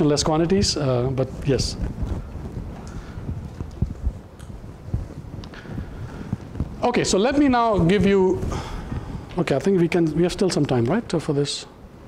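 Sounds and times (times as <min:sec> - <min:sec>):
clothing rubbing: 0:00.0 - 0:11.2
soft footsteps: 0:00.0 - 0:11.2.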